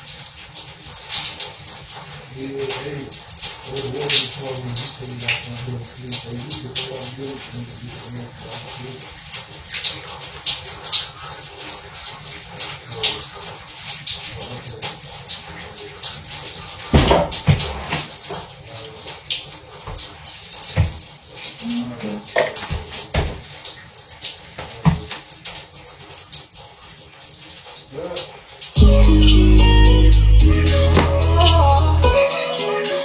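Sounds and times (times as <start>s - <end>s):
shower water running: 0.0s - 33.0s
knocks and thumps: 16.9s - 18.1s, 20.8s - 21.0s, 22.5s - 23.4s, 30.9s - 31.3s.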